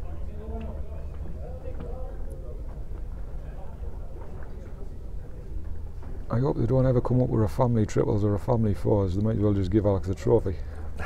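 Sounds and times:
faint distant voices: 0.0s - 11.0s.

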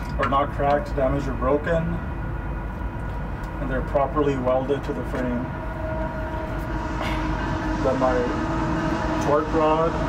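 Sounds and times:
constant hum: 0.0s - 10.0s
low mechanical rumble: 0.0s - 10.0s.

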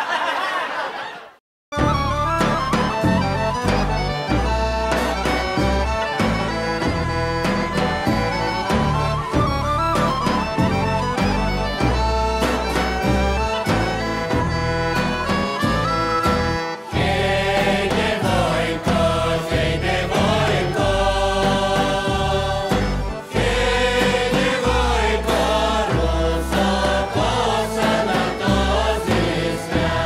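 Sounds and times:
accordion: 1.7s - 30.0s
bagpipe drone: 1.8s - 30.0s
bass drum beats: 1.8s - 30.0s.

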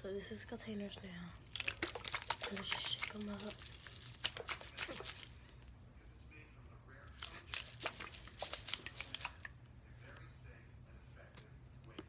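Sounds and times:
plastic containers clicking: 1.5s - 5.3s.

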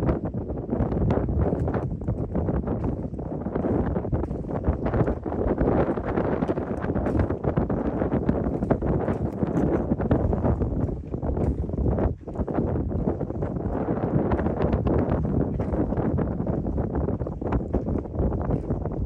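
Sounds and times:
wind buffeting microphone: 0.0s - 19.0s
footsteps on wooden boards: 1.1s - 19.0s.

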